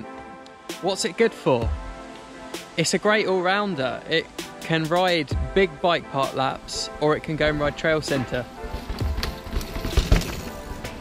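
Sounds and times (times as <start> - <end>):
background music: 0.0 - 11.0
mountain bike rumbling over rocks: 7.8 - 11.0.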